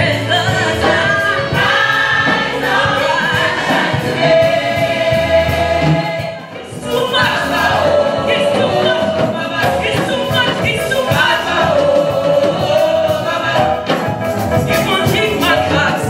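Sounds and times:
women's choir singing gospel: 0:00.0 - 0:16.0
steady beat: 0:00.1 - 0:16.0.

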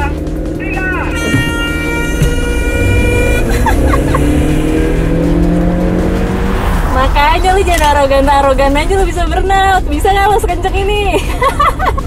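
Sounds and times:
car engines accelerating hard: 0:00.0 - 0:12.0
steady high tone: 0:00.8 - 0:05.3.

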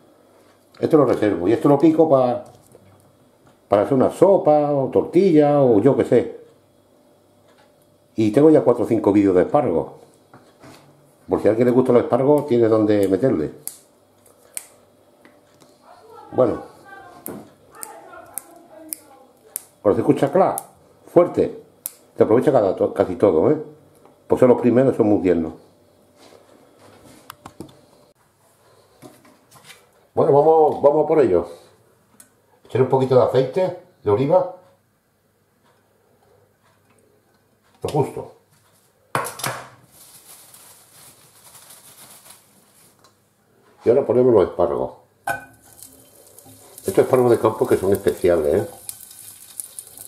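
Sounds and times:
oil hissing in frying pan: 0:45.5 - 0:50.0.

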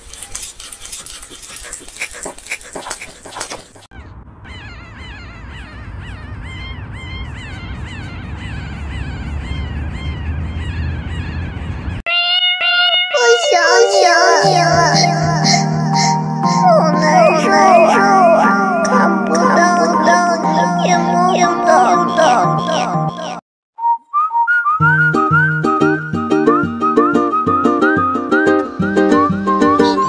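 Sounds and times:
puppy crunching hard food: 0:00.0 - 0:03.9
newborn puppies squealing: 0:04.5 - 0:23.4
music with singing: 0:13.2 - 0:23.4.

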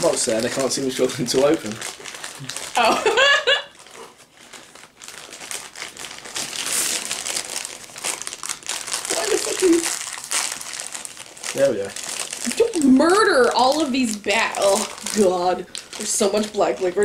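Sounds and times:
sweet packet crinkling: 0:00.0 - 0:17.0.

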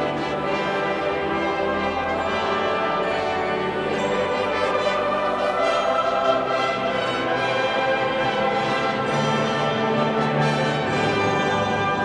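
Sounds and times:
church music with brass: 0:00.0 - 0:12.0.

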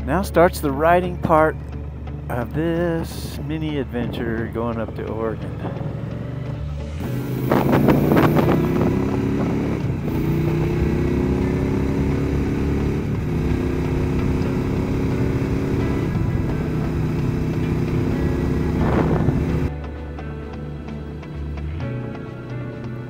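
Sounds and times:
wind noise: 0:02.7 - 0:11.0, 0:17.7 - 0:19.7
motorcycle engine accelerating: 0:04.8 - 0:19.8.

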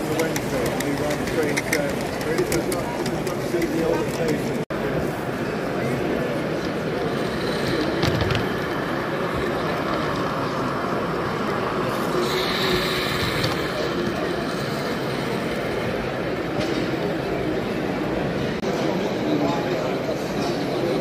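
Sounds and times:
model steam locomotive running: 0:00.0 - 0:04.2, 0:08.6 - 0:18.4
crowd voices: 0:00.0 - 0:21.0.

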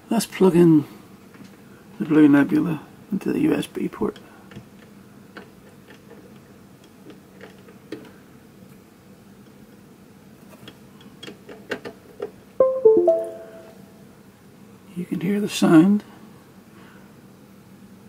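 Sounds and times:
two-note computer chime: 0:12.6 - 0:13.8.

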